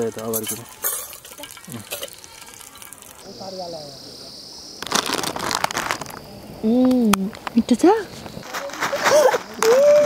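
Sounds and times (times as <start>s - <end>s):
crackling and crinkling: 4.8s - 10.0s.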